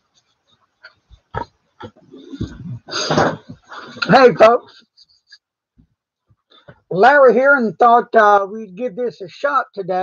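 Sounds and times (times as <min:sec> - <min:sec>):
man clearing his throat: 0:02.1 - 0:04.1.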